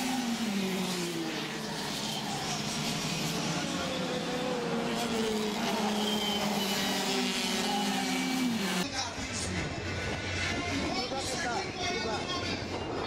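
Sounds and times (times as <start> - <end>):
kart engines passing: 0.0 - 10.9.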